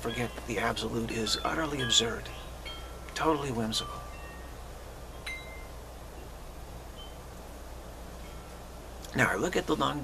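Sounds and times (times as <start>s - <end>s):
chimes ringing: 0.0s - 7.4s
steady low hum: 0.0s - 10.0s.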